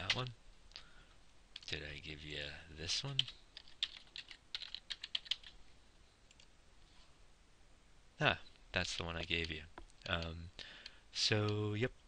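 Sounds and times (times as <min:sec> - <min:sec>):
computer keyboard typing: 0:03.2 - 0:05.6.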